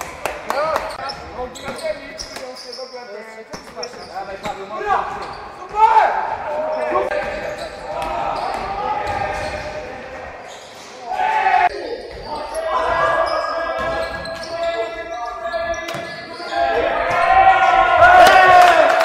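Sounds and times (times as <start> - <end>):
players calling and shouting: 0.4 - 19.0.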